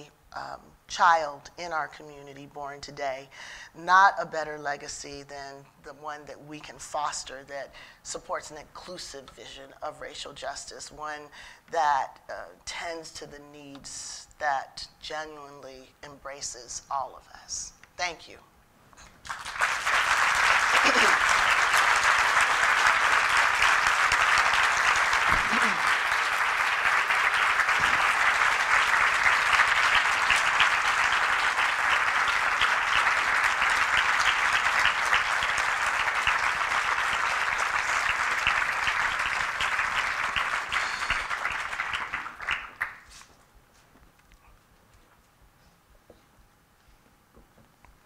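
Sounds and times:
large audience applauding: 19.2s - 43.2s.

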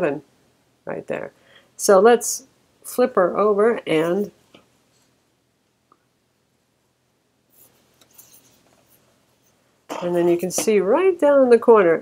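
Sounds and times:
laptop handling scrapes and taps: 7.6s - 9.0s.

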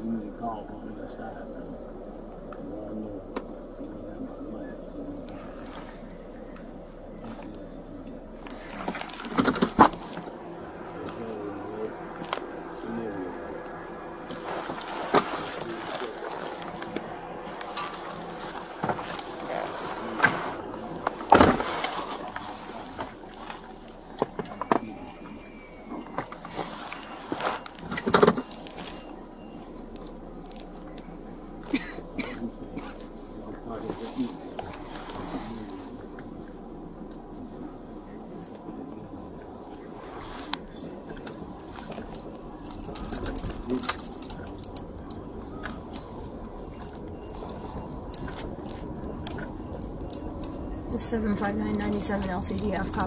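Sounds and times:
camera rustling against clothing: 8.4s - 11.3s, 13.6s - 31.9s, 32.8s - 38.7s, 39.4s - 53.0s.

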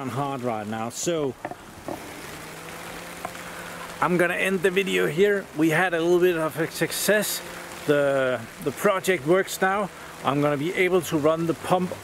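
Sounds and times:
heavy rain hissing: 0.0s - 12.0s.

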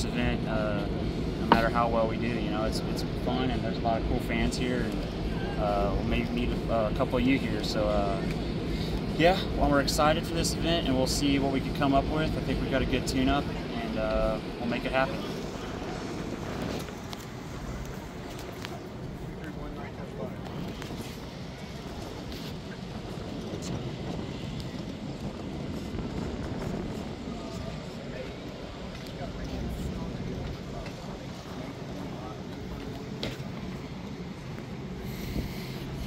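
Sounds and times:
people chattering outdoors: 0.0s - 36.0s
steady low rumble: 0.0s - 36.0s.

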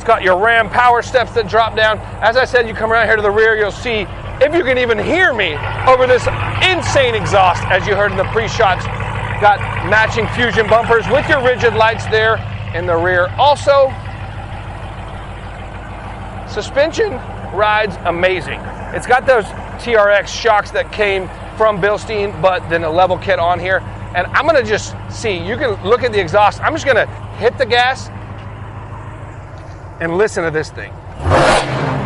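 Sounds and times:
truck engine idling: 0.0s - 32.0s.

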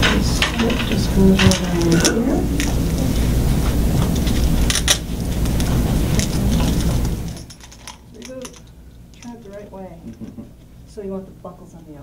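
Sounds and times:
faint voices: 0.0s - 3.8s
loud low rumble: 0.0s - 7.4s.

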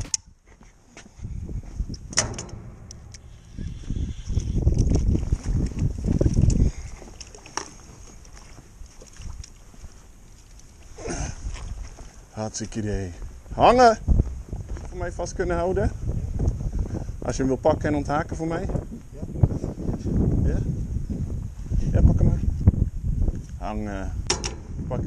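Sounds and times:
sharp clicks: 1.9s - 3.4s
water splashing: 4.6s - 11.6s.

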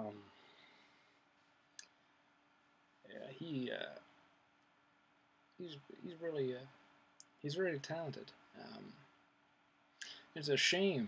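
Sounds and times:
man saying um: 0.0s - 0.2s, 3.1s - 4.0s, 5.6s - 6.6s, 7.5s - 9.0s, 10.0s - 11.0s
faint steady hum: 0.0s - 11.0s.

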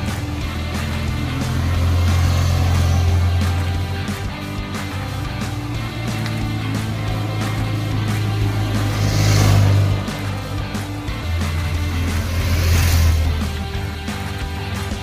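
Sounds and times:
background music with steady beat: 0.0s - 15.0s
motorcycles passing by: 0.0s - 15.0s.

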